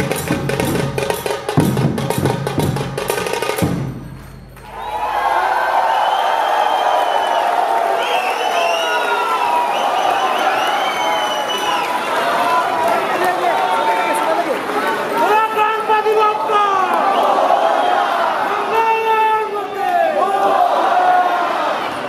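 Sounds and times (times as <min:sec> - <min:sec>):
dhol and tasha drumming: 0:00.0 - 0:04.9
crowd cheering and shouting: 0:04.6 - 0:22.0.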